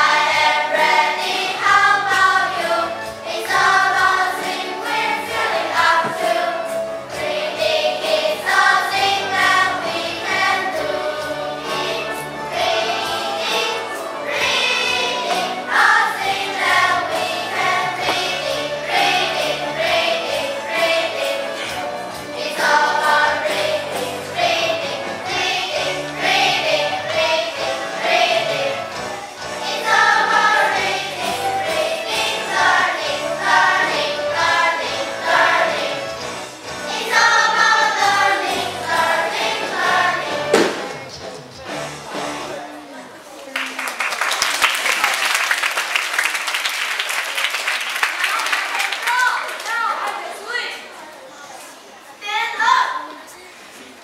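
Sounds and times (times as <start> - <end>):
children singing in a choir: 0.0 - 40.9
instrumental accompaniment: 0.0 - 42.8.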